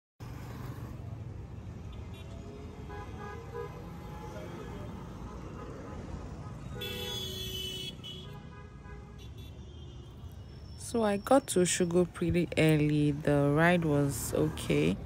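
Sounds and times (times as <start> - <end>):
traffic rumble: 0.2 - 15.0
vehicle horn: 1.8 - 10.4.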